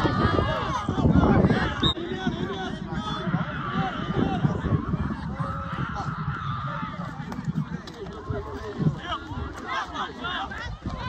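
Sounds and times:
people shouting and yelling: 0.0 - 11.0.

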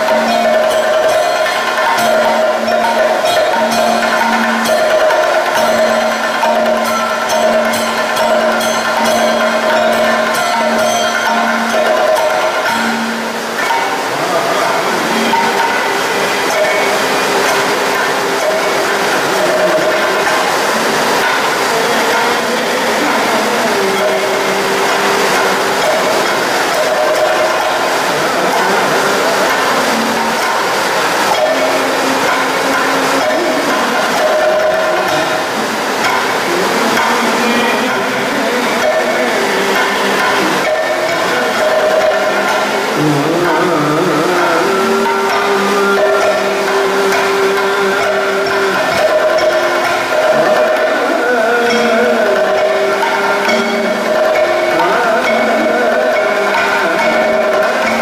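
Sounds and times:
person chanting in gliding notes: 0.0 - 58.0.

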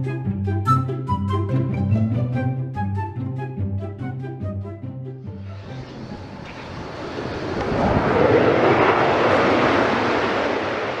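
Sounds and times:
jet engine roar: 5.4 - 11.0.

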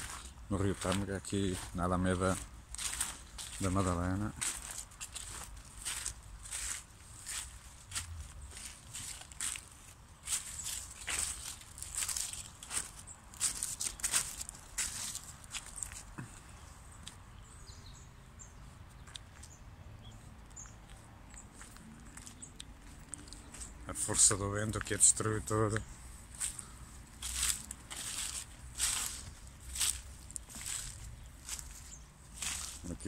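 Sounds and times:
footsteps on grass and twigs: 0.0 - 17.3, 18.9 - 19.6, 20.2 - 33.0.

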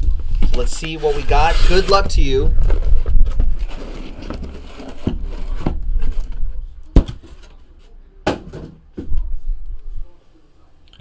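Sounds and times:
cardboard rustling and scraping: 0.0 - 7.9.

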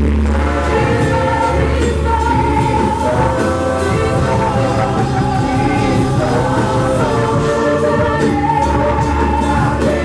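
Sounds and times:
band with steady bass line: 0.0 - 10.0
lead vocalist singing: 0.2 - 10.0
women's gospel choir singing: 0.3 - 10.0.

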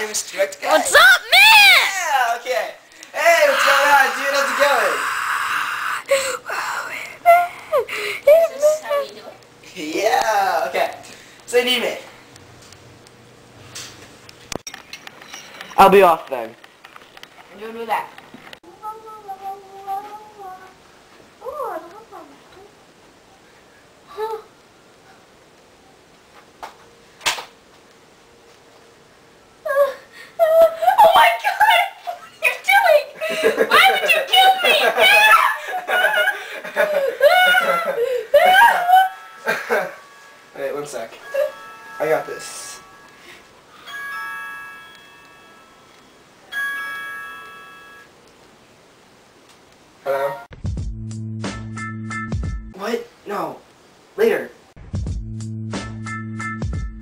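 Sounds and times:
long held note: 38.8 - 46.0
bell-like phone ringtone: 39.0 - 48.2.

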